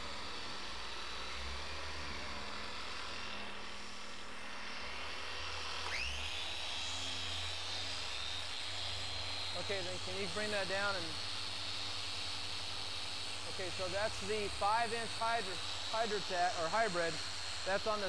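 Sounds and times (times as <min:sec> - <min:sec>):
low hum of machine polishing: 0:00.0 - 0:18.0
polisher motor whine: 0:00.0 - 0:18.0.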